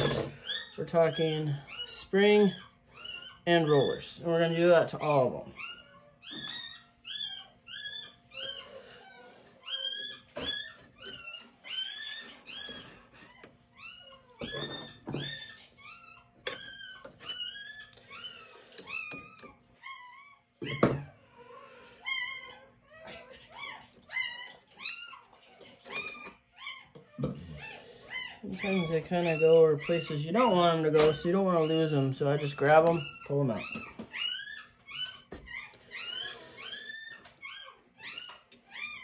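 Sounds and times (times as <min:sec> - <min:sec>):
pet animal crying: 0:00.0 - 0:39.0.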